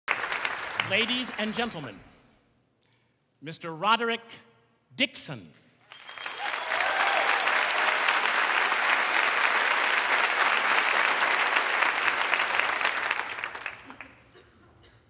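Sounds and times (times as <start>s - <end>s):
audience applauding: 0.1s - 1.8s, 5.8s - 14.3s.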